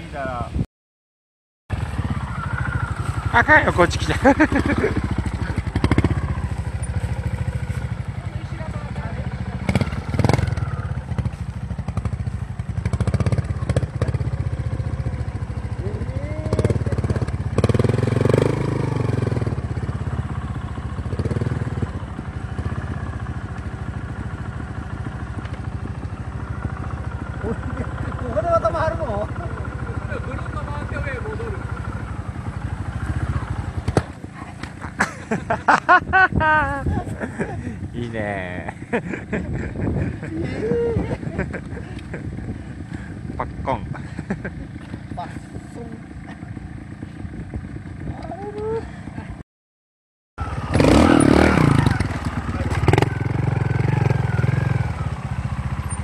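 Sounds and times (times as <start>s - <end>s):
two-stroke motorcycle engine: 1.7s - 49.4s, 50.4s - 56.0s.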